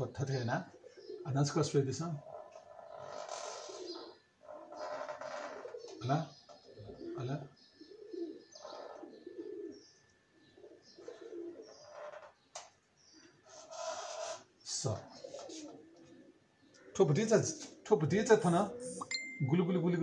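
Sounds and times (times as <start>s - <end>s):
soft low bird cooing: 0.0s - 19.1s.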